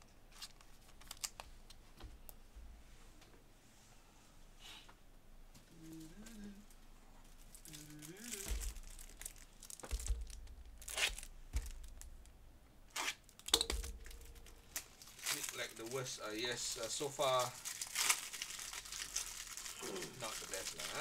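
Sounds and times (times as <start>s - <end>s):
plastic wrapper crinkling: 0.3s - 1.5s, 7.2s - 21.0s.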